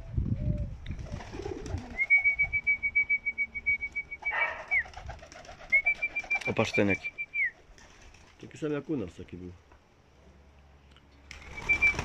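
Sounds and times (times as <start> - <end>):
pigeons cooing: 0.5 - 2.4, 4.2 - 6.4.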